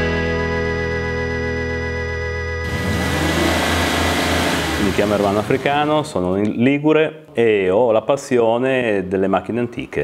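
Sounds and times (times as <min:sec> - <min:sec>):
car engine revving: 0:02.6 - 0:06.2.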